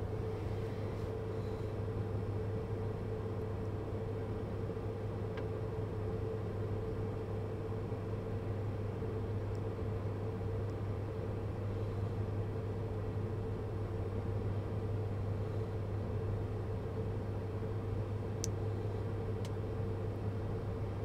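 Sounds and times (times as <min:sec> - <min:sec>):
car cabin hum and hiss: 0:00.0 - 0:21.0.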